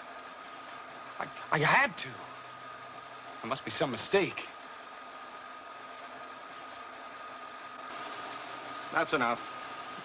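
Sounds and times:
faint high hum: 0.0 - 10.0
film projector whirring: 0.0 - 10.0.

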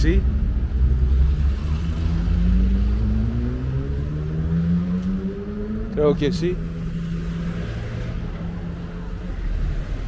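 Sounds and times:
low road rumble: 0.0 - 10.0.

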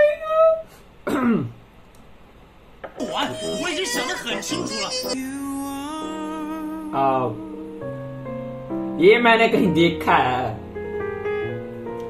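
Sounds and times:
person's voice falling in pitch: 3.0 - 6.4.

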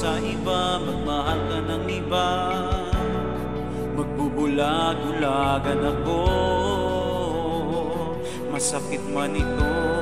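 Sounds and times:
instrumental backing with bass: 0.0 - 10.0
person singing pop ballad: 0.0 - 10.0.

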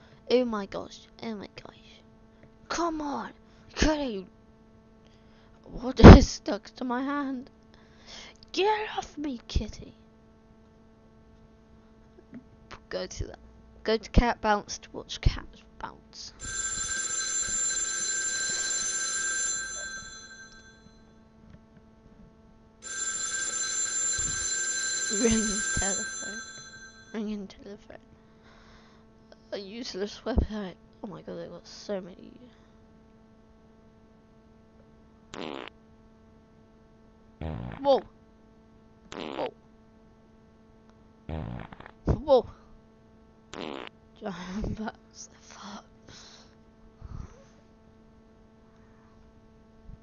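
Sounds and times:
telephone bell ringing: 16.4 - 21.1, 22.8 - 27.2
fart sound effects: 35.4 - 35.8, 37.4 - 37.9, 39.1 - 39.5, 41.3 - 42.1, 43.5 - 43.9.

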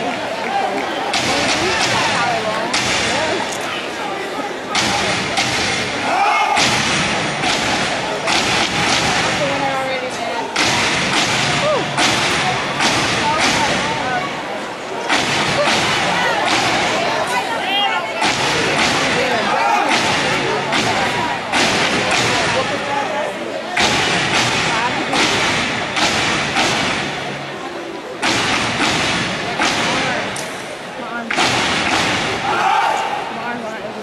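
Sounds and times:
crowd yelling: 0.0 - 34.0
stomping and slapping in unison: 1.1 - 3.4, 4.7 - 9.8, 10.5 - 14.2, 15.0 - 17.4, 18.2 - 22.8, 23.7 - 27.4, 28.2 - 30.6, 31.3 - 33.2.

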